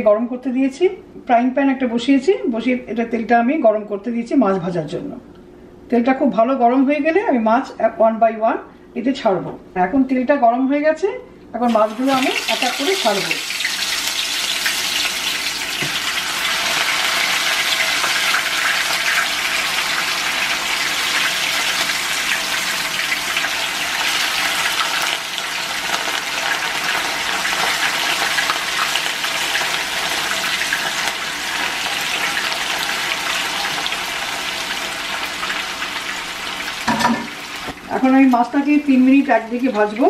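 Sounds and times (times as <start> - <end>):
fish sizzling in hot oil: 11.7 - 37.8.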